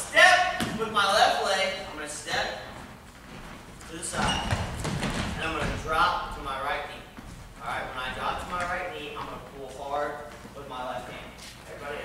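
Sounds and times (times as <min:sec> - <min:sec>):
feet thudding on mats: 0:02.7 - 0:05.9.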